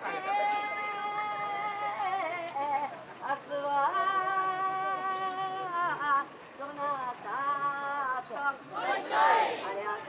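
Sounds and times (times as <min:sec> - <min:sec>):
person singing a work chant: 0:00.0 - 0:08.8.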